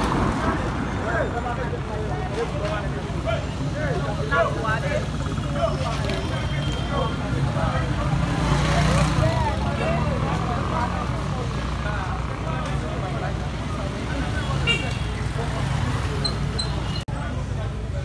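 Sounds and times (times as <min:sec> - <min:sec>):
motorcycle engines running: 0:00.0 - 0:18.0
people talking: 0:00.0 - 0:18.0.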